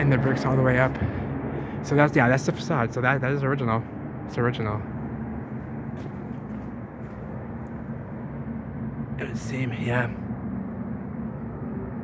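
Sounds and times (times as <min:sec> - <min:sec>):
city background hum: 0:00.0 - 0:12.0.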